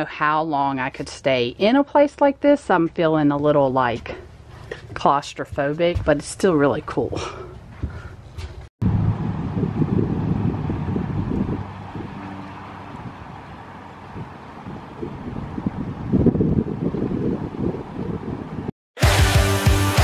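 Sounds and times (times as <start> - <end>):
wind buffeting microphone: 3.4 - 18.7.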